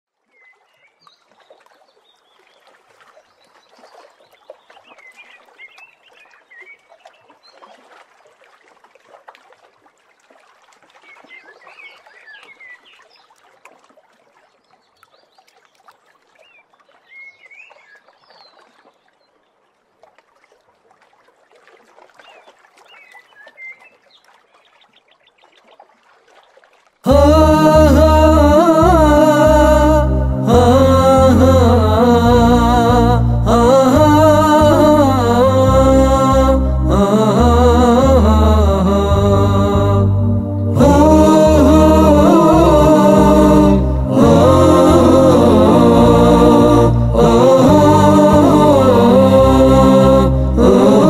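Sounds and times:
lake water lapping at shore: 0:00.1 - 0:27.1.

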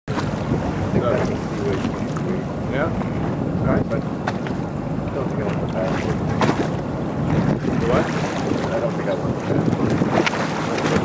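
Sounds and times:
water rushing: 0:00.1 - 0:11.0
wind buffeting microphone: 0:00.1 - 0:11.0.

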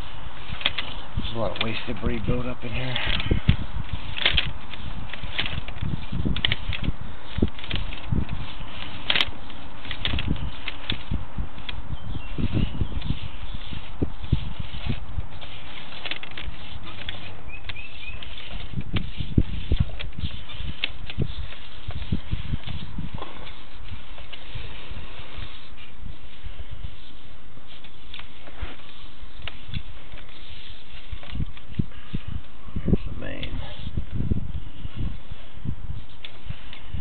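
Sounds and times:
steady hiss: 0:00.0 - 0:37.0.

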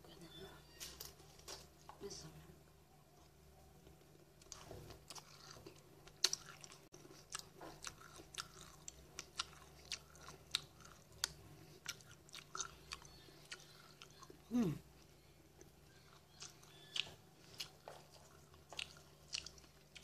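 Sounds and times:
chewing crunchy cereal: 0:03.9 - 0:20.0.

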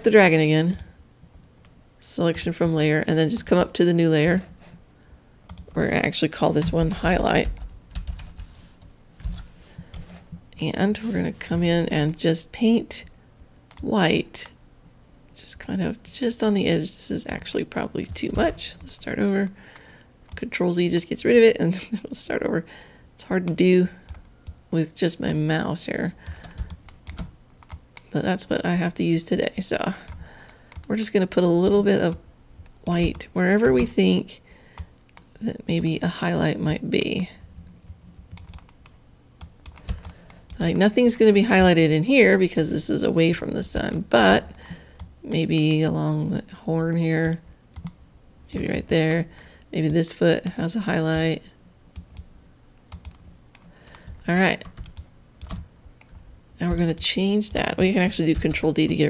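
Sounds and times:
computer mouse clicks: 0:13.6 - 0:14.6, 0:38.2 - 0:40.6, 0:51.9 - 0:56.2.

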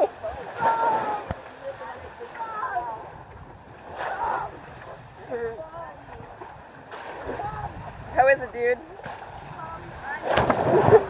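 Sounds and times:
waves washing around boat: 0:00.0 - 0:11.0
wind buffeting microphone: 0:00.0 - 0:11.0.

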